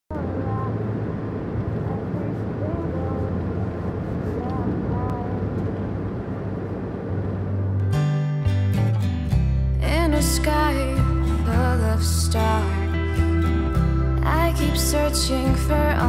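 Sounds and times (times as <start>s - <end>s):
bus engine low rumble: 0.1s - 16.0s
road noise: 0.1s - 16.0s
faint voices: 1.7s - 5.6s.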